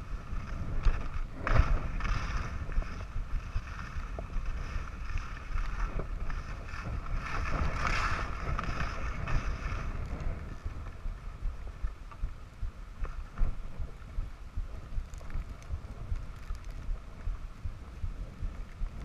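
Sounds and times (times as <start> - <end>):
skis sliding over snow: 0.0 - 11.7
wind rushing over microphone: 0.0 - 19.0.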